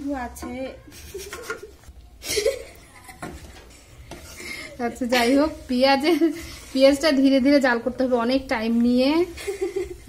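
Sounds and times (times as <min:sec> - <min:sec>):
metal spoon scraping a pan: 0:00.2 - 0:01.9, 0:03.2 - 0:08.0
onions sizzling in oil: 0:04.1 - 0:10.0.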